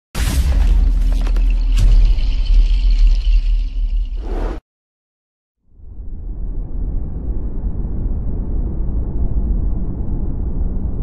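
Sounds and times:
deep bass rumble: 5.8 - 11.0.

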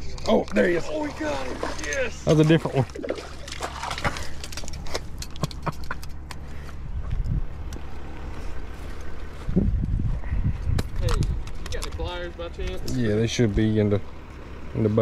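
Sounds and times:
water splashes: 0.8 - 4.6
low rumble: 6.2 - 12.8.

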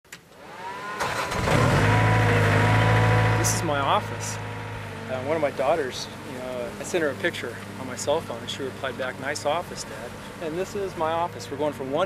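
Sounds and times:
engine running with deep hum: 0.4 - 12.0.

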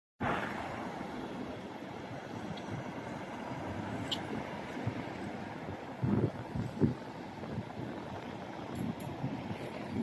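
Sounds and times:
road traffic rush: 0.2 - 10.0.

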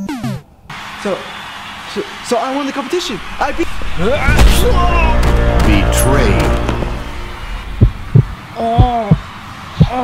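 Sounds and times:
heartbeat double thumps: 6.4 - 10.0.

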